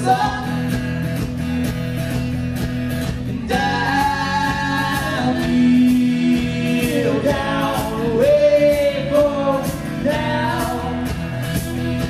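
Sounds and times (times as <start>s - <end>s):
folk-rock band playing live: 0.0s - 12.0s.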